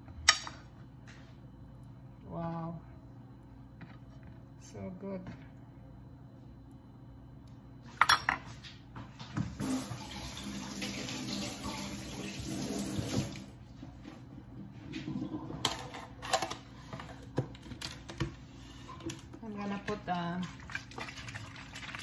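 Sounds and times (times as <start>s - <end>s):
water running: 9.5s - 13.6s, 19.4s - 22.0s.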